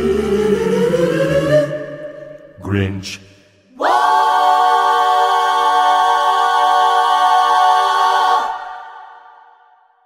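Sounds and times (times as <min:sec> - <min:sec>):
choir holding sustained chords: 0:00.0 - 0:03.0, 0:03.7 - 0:09.6.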